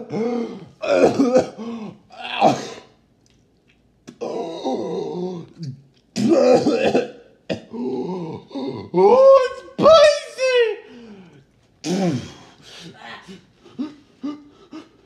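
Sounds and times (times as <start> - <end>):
man clearing throat and groaning: 0.0 - 3.0, 4.1 - 9.1, 11.8 - 12.5.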